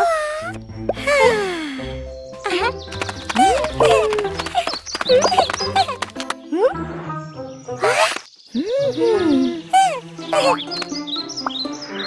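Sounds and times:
light background music: 0.0 - 12.0
high-pitched cartoon vocal cries: 3.4 - 6.0, 7.8 - 10.7.

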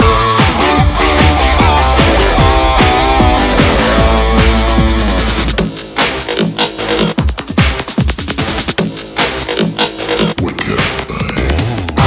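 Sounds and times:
drum and bass music: 0.0 - 12.0.

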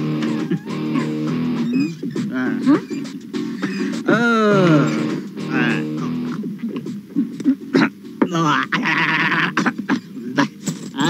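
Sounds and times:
man crying out: 8.4 - 9.8.

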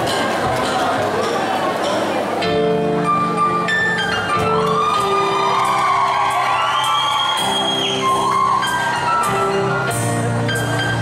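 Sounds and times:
live band music: 0.0 - 11.0
audience cheering and whooping: 4.5 - 10.0.

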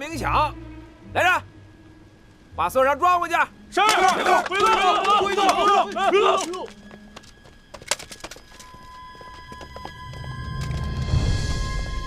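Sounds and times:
tense music: 0.0 - 12.0
rifles clattering: 3.8 - 9.7
footsteps clicking: 3.9 - 10.8.

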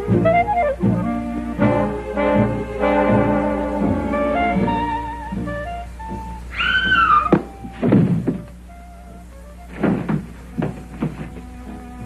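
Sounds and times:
high wailing tone: 6.5 - 7.7
dull thuds: 7.1 - 8.7, 9.6 - 12.0.

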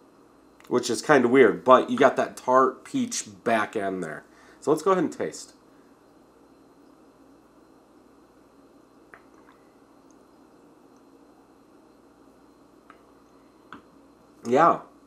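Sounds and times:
man sipping and swallowing: 9.1 - 10.2.

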